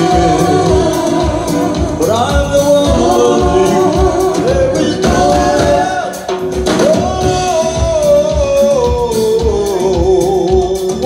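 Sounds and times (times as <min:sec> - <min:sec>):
live reggae band playing: 0:00.0 - 0:11.0.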